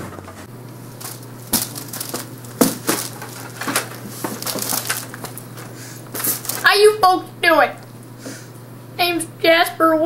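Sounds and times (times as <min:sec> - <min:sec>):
handling clicks and knocks: 0:00.0 - 0:06.7
clothing rustling: 0:01.0 - 0:06.7.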